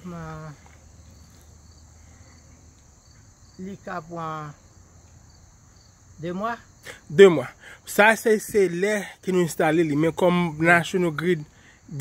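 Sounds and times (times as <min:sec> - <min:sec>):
crickets chirring: 0:00.0 - 0:12.0
man speaking: 0:06.9 - 0:12.0.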